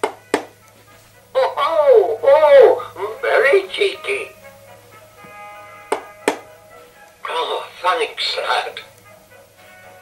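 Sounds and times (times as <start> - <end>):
music with faint held notes: 0.0 - 10.0.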